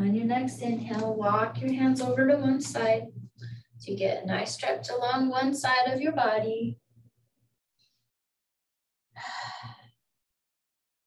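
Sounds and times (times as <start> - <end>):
woman sighing: 9.2 - 9.8.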